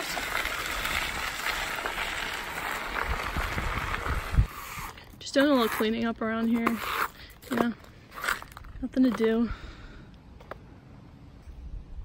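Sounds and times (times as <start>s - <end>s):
bicycle tyres rolling on dirt: 0.0s - 5.0s
wind rumbling on microphone: 0.7s - 5.0s.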